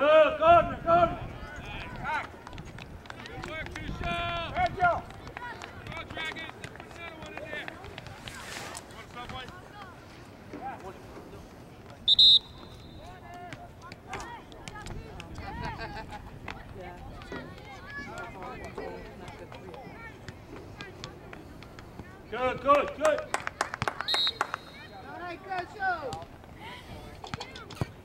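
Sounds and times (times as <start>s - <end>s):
players and spectators shouting: 0.0s - 2.5s.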